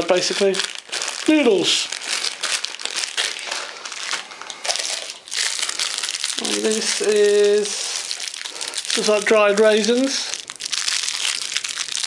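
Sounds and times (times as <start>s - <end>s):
plastic food packets crinkling: 0.0s - 12.0s.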